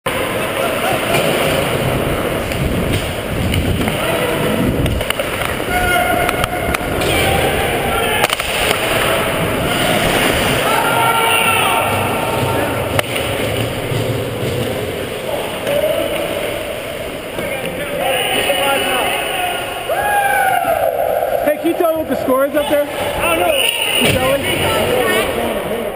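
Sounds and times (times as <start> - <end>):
players shouting: 3.9 - 13.2, 17.8 - 25.1.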